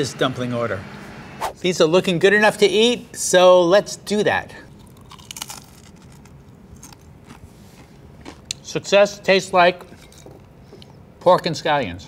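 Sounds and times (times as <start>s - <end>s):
person chewing crunchy food: 4.7s - 8.7s, 9.8s - 10.9s.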